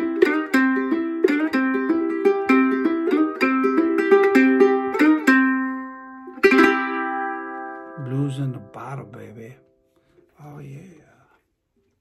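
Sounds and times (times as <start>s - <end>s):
slide ukulele riff: 0.0s - 9.1s.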